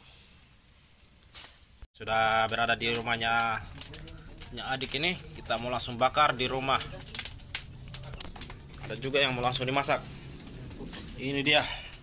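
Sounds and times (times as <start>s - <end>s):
wood fire crackling and popping: 0.3s - 12.0s.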